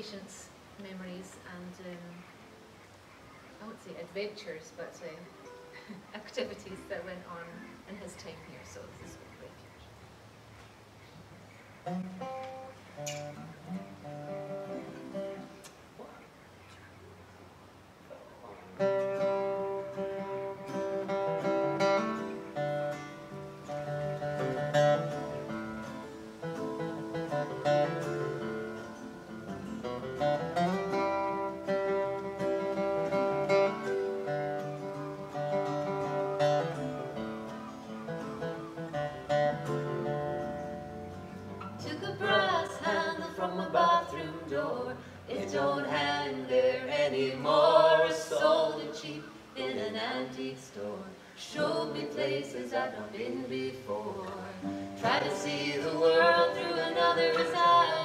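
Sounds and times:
acoustic guitar picked chords: 0:11.7 - 0:16.1, 0:18.6 - 0:50.2, 0:51.6 - 0:58.0
person singing: 0:41.8 - 0:58.0.

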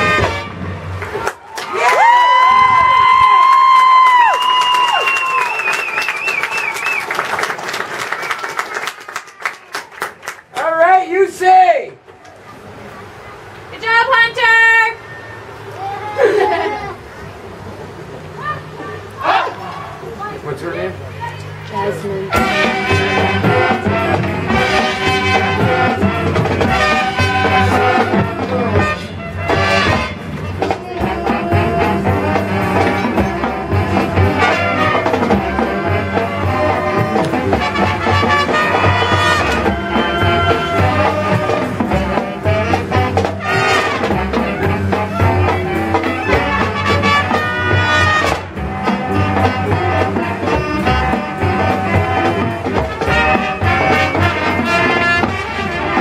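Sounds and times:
brass melody: 0:00.0 - 0:01.3, 0:22.0 - 0:56.0
marching percussion: 0:00.0 - 0:11.5, 0:21.0 - 0:56.0.

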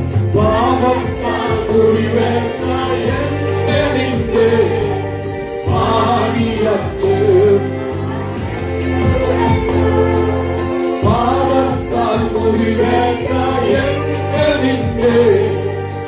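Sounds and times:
group singing gospel song: 0:00.0 - 0:16.0
steady beat: 0:00.0 - 0:16.0
sustained instrumental accompaniment: 0:00.0 - 0:16.0.

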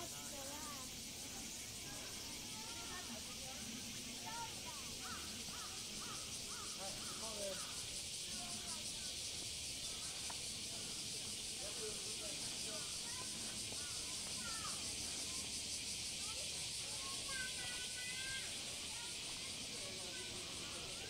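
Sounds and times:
cicadas buzzing: 0:00.0 - 0:21.0
people's voices: 0:00.0 - 0:21.0.

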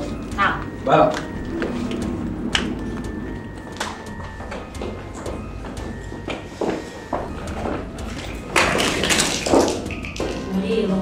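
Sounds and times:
high heels clicking on wooden floor: 0:00.1 - 0:10.5.

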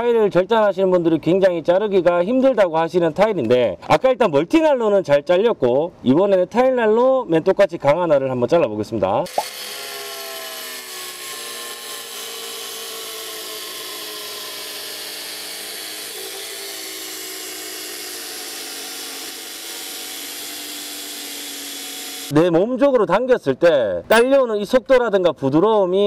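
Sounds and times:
angle grinder cutting tile: 0:09.3 - 0:22.3.

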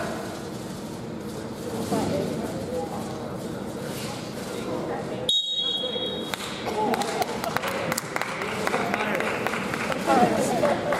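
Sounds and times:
high steady beep: 0:05.3 - 0:06.2.

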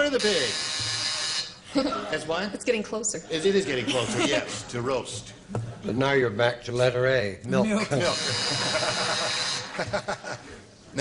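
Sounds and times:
audience laughing and applauding: 0:08.4 - 0:10.5.

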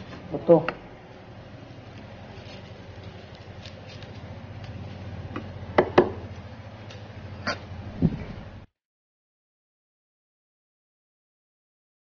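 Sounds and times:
steady low hum: 0:00.0 - 0:08.7.

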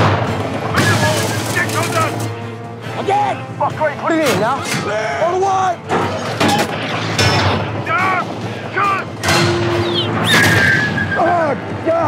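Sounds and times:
men shouting: 0:07.7 - 0:09.2.

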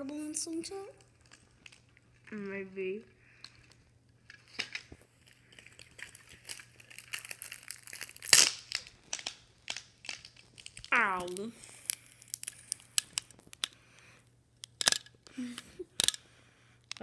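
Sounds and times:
plastic packaging crinkling: 0:01.0 - 0:02.4, 0:03.4 - 0:13.8
loud sharp plastic rip: 0:06.3 - 0:10.9.

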